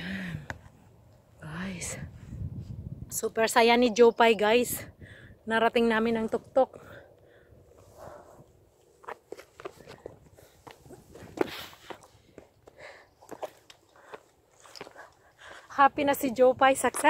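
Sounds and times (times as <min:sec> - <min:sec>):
footsteps and scuffs: 0:08.8 - 0:15.3.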